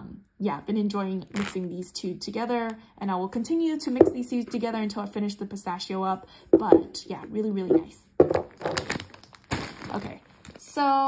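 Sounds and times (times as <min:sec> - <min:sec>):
knock on tabletop: 0:04.0 - 0:04.2, 0:06.6 - 0:07.0, 0:07.7 - 0:08.5
packaging thunk on wooden table: 0:07.7 - 0:09.9
crinkly packaging rustling: 0:08.2 - 0:10.8.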